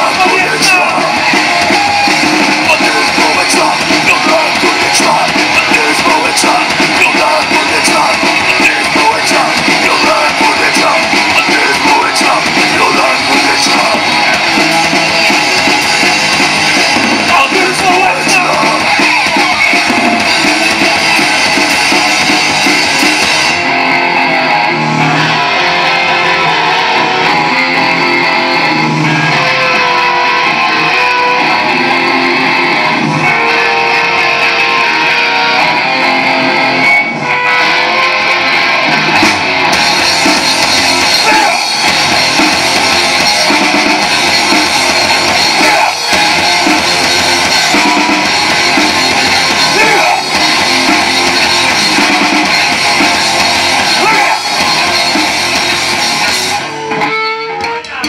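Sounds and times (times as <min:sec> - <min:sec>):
hardcore punk band playing: 0:00.0 - 0:58.0.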